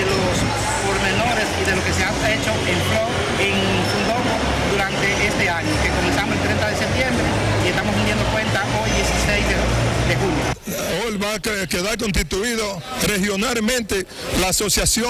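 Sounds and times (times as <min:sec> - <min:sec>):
crowd of voices: 0:00.0 - 0:15.0.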